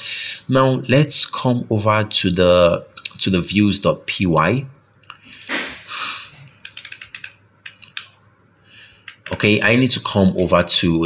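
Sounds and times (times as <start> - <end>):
keyboard typing: 5.0 - 5.6, 6.5 - 8.2, 9.0 - 9.4.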